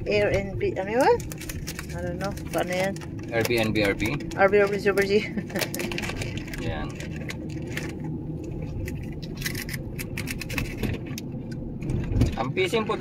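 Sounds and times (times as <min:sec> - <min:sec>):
engine and tyres rumbling: 0:00.0 - 0:13.0.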